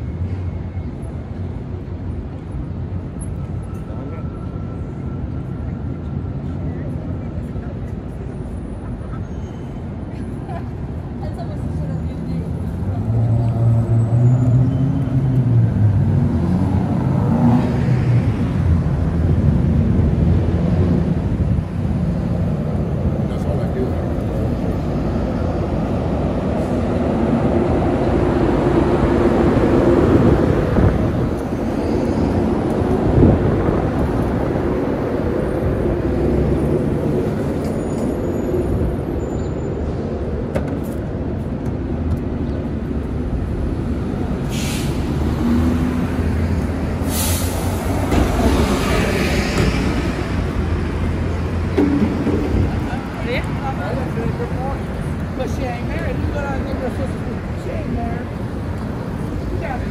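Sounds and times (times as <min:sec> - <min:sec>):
cars and buses passing: 0:00.0 - 0:59.9.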